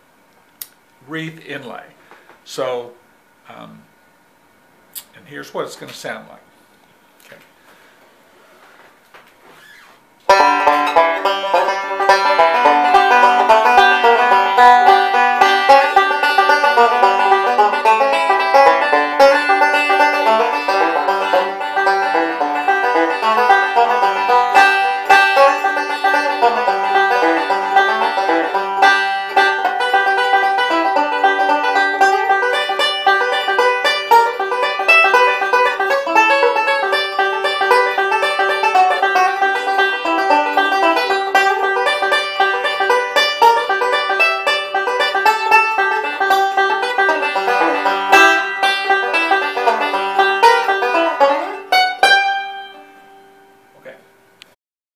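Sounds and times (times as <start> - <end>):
fingerpicked bluegrass banjo: 10.3 - 53.3.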